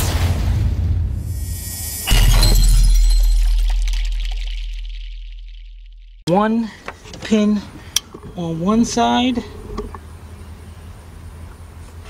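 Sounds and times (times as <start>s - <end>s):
deep boom: 0.0s - 6.2s
whoosh: 0.0s - 6.2s
low rumble: 0.0s - 6.3s
glass shattering: 1.6s - 6.2s.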